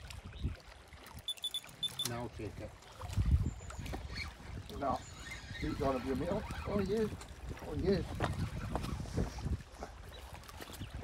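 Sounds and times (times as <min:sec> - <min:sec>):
wind buffeting microphone: 0:00.0 - 0:01.3, 0:02.2 - 0:11.0
small waves lapping on rocks: 0:00.0 - 0:11.0.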